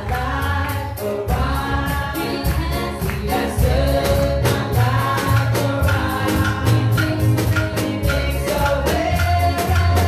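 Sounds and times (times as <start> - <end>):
group singing worship song: 0.0 - 10.0
keyboard: 0.0 - 10.0
steady beat: 0.0 - 10.0.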